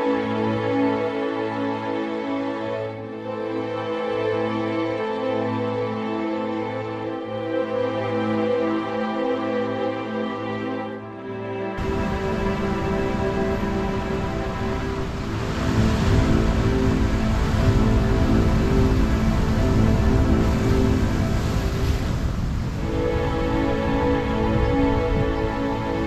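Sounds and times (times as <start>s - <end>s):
background music sustained tones: 0.0s - 26.0s
heavy surf rushing: 11.8s - 26.0s.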